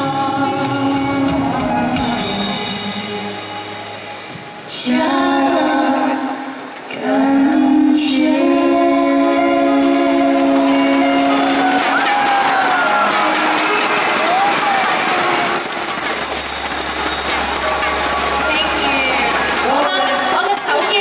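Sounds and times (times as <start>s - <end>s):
audience applause and cheering: 9.4s - 21.0s
audience screams: 10.6s - 20.4s.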